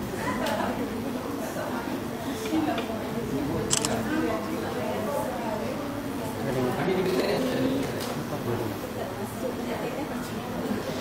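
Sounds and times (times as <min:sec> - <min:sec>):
quiet background talking: 0:00.0 - 0:11.0.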